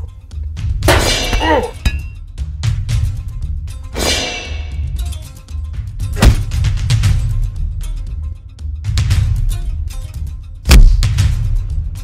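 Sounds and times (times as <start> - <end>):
action music with drums: 0.0 - 12.0
metallic shield clang: 4.0 - 4.8.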